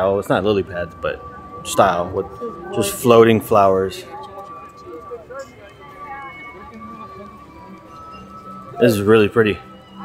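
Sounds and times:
indistinct background chatter: 0.0s - 10.0s.

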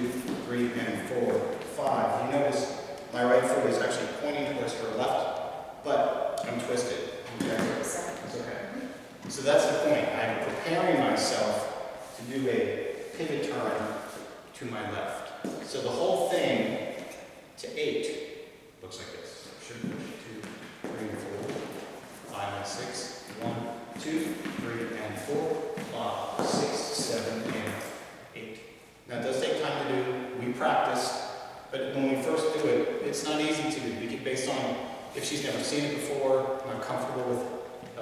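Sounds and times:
man talking: 0.0s - 38.0s
man counting aloud: 22.3s - 31.2s.

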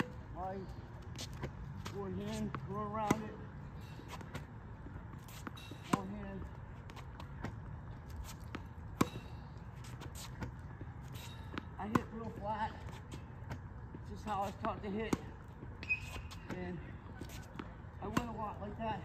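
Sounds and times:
tennis ball bouncing: 1.1s - 19.0s
tennis racket hitting ball: 2.2s - 3.4s, 5.3s - 6.2s, 11.5s - 12.4s, 17.3s - 18.5s.

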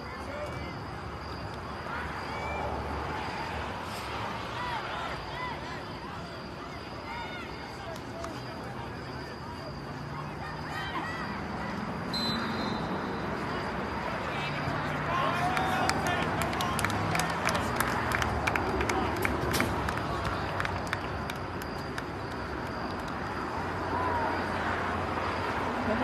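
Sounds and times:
spectators talking and calling out: 0.0s - 21.7s
crowd noise: 0.0s - 26.0s.

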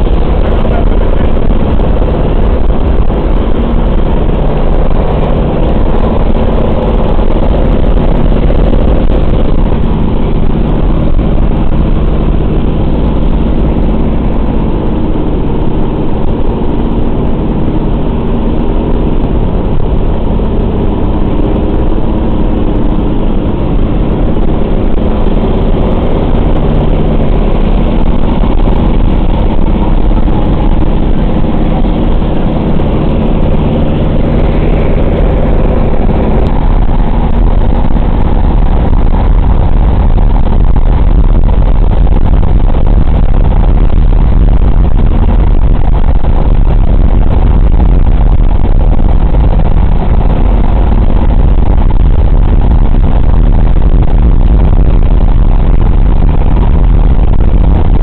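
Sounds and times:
aircraft engines droning: 0.0s - 41.4s
air rushing through windows: 0.0s - 58.0s.

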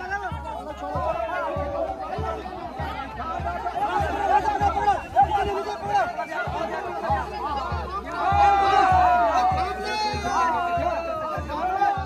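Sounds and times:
men calling out and talking: 0.0s - 12.0s.

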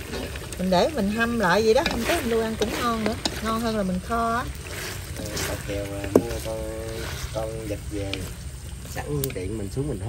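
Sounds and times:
people talking: 0.6s - 4.5s, 5.2s - 8.3s, 8.9s - 10.0s.

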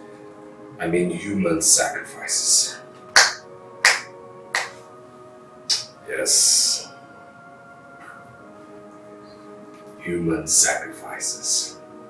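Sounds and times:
faint held music tones: 0.0s - 12.0s
sharp snap-like percussion hits: 3.1s - 4.8s, 5.7s - 6.0s.

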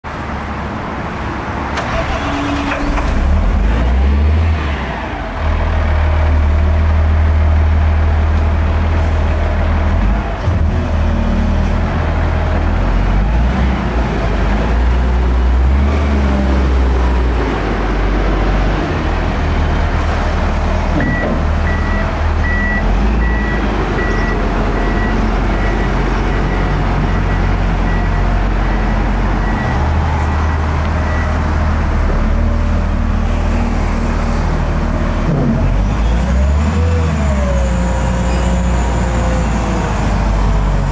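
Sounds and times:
wheel loader diesel engine: 0.0s - 40.9s.

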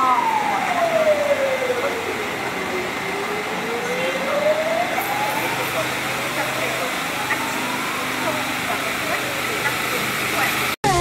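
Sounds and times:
siren wailing: 0.0s - 10.8s.

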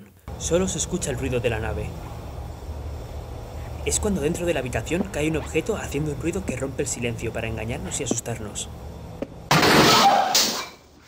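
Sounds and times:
falling object crashing and clattering: 9.5s - 10.8s.

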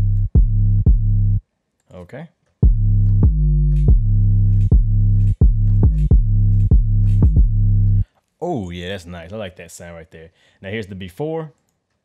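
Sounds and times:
distorted bass notes: 0.0s - 1.4s, 2.6s - 8.0s.

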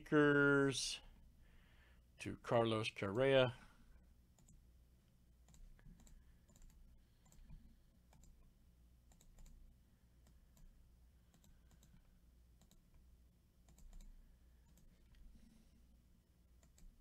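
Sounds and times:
computer mouse and keyboard clicks: 5.4s - 8.4s, 9.1s - 9.6s, 11.3s - 13.0s, 13.6s - 15.2s.

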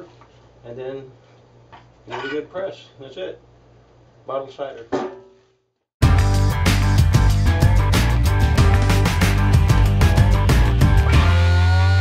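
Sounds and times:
music with strong bass and beat: 6.0s - 12.0s.

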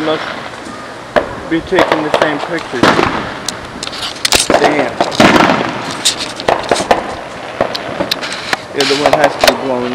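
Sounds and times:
fireworks popping and banging: 0.0s - 9.9s.

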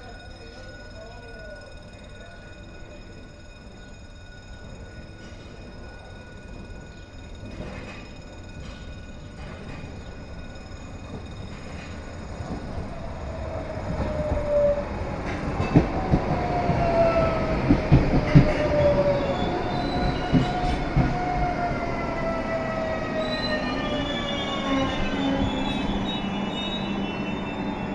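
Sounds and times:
electric train braking: 0.5s - 27.9s
train wheels knocking on rail joints: 15.2s - 19.0s, 19.8s - 21.3s.

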